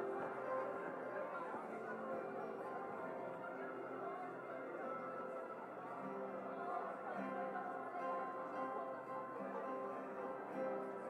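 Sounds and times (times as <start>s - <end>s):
soft instrumental worship music: 0.0s - 11.0s.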